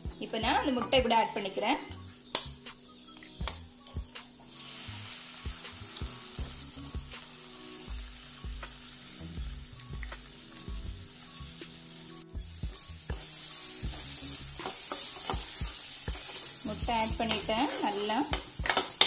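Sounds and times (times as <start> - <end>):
food sizzling in a pan: 0.0 - 19.0.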